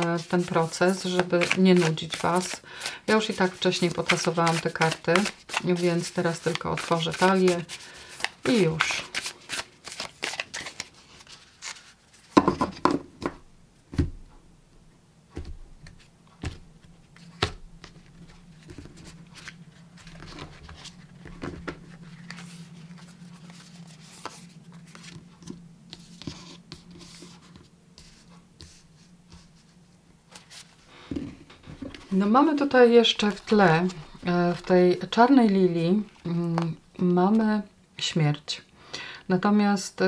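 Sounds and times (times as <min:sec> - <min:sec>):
cards shuffling and rustling: 0:00.0 - 0:12.9, 0:15.8 - 0:29.7, 0:33.1 - 0:36.8
faint steady hum: 0:00.0 - 0:40.0.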